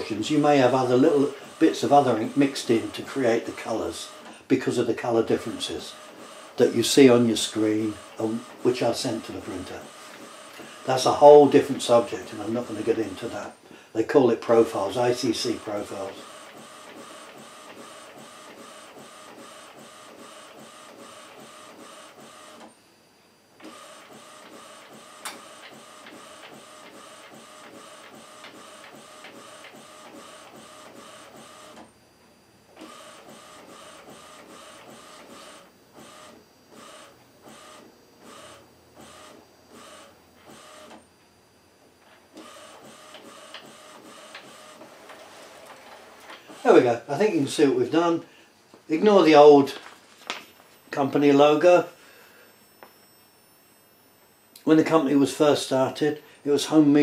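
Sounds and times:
inkjet printer printing: 0.0s - 22.8s, 23.6s - 31.9s, 32.7s - 41.0s, 42.3s - 48.2s.

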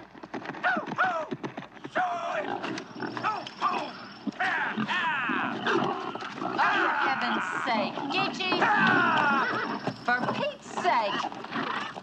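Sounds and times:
pigs grunting and squealing: 2.1s - 12.0s.

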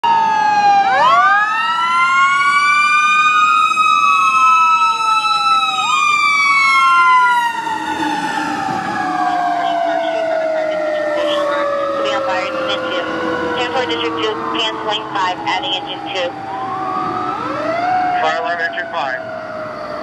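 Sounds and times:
siren wailing up and down: 0.0s - 20.0s
winding siren tone: 0.1s - 20.0s.

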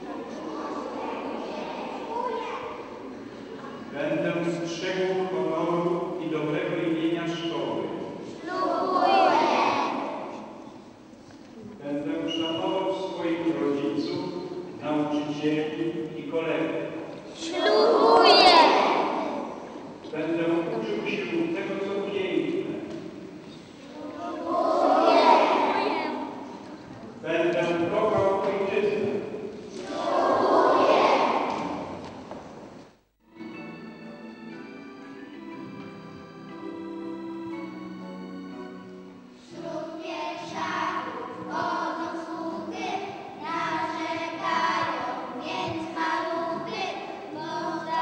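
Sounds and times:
children shouting in unison: 8.4s - 10.3s, 17.4s - 19.6s, 24.0s - 26.3s, 29.8s - 31.9s
group of voices singing: 17.4s - 19.2s, 24.0s - 25.9s, 29.7s - 31.8s, 39.5s - 48.0s.

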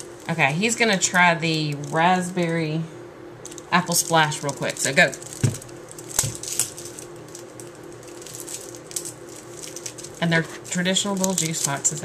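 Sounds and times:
plastic wrapper crinkling: 0.0s - 2.6s, 3.4s - 12.0s.

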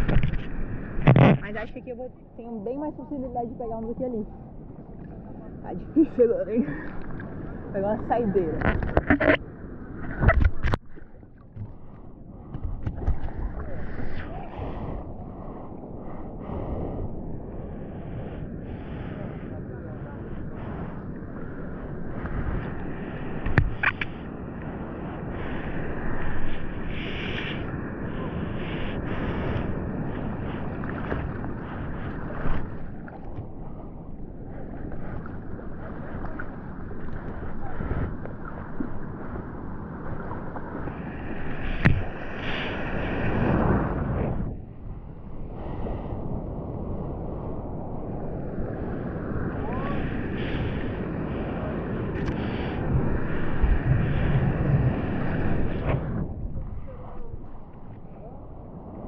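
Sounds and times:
sea water sloshing: 0.0s - 46.3s.

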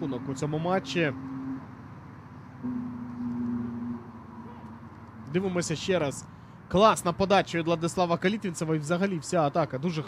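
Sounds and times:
low steady hum: 0.0s - 6.6s.

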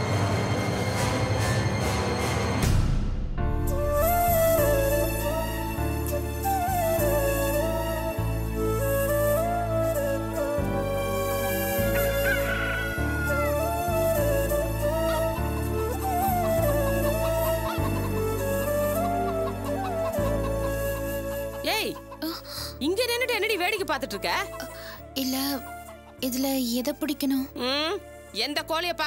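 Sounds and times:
dramatic background score: 0.0s - 29.0s
soft background music: 0.0s - 29.0s
rooster crowing: 11.8s - 13.8s.

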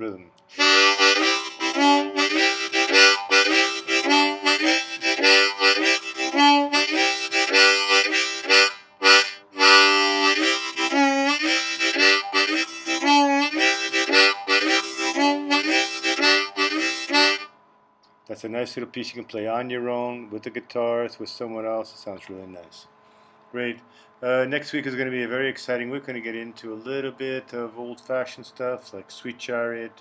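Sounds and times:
harmonica chord rhythm: 0.5s - 17.6s.

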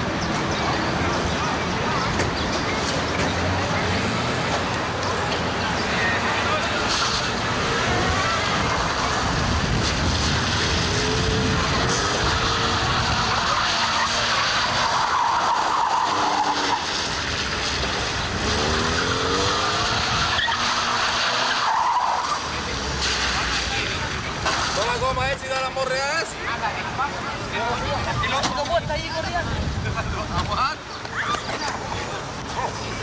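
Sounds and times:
car engine revving: 2.4s - 24.8s
tyres squealing: 10.6s - 24.9s.

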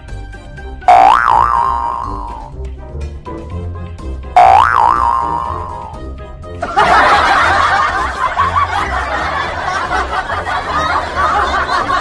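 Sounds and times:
background music: 0.0s - 12.0s
cartoon boing sound effect: 0.9s - 2.5s, 4.4s - 6.0s
burst of laughter: 6.6s - 12.0s.

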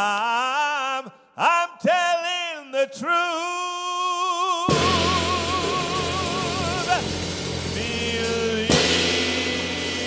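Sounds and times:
man singing held note: 0.0s - 10.0s
blues band playing: 4.7s - 10.0s
cymbal crash: 4.7s - 10.0s.

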